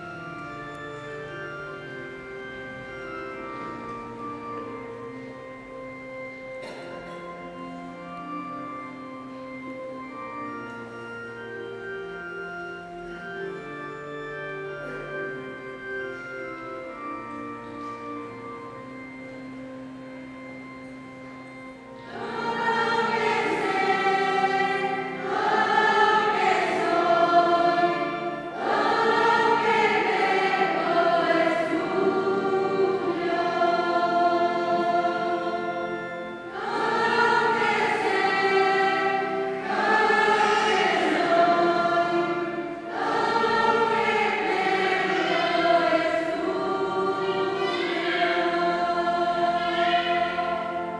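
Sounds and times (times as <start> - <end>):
children's choir singing a hymn: 0.0 - 50.9.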